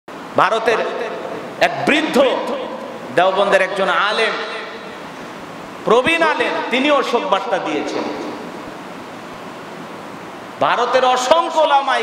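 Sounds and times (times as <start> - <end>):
microphone hiss: 0.1 - 12.0.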